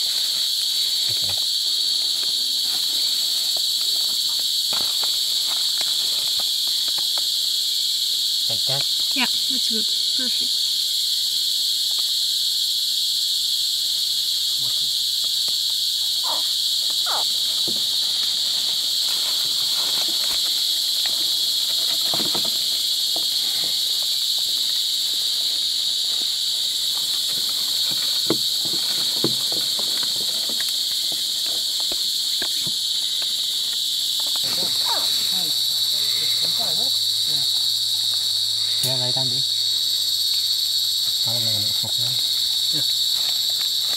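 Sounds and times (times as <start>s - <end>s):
night insects buzzing: 0.0s - 43.9s.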